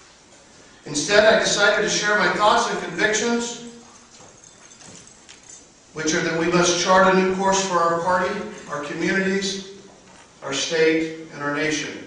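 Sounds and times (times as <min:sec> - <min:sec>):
faint room noise: 0:00.0 - 0:12.0
man's amplified speech: 0:00.8 - 0:03.8, 0:06.0 - 0:09.8, 0:10.4 - 0:12.0.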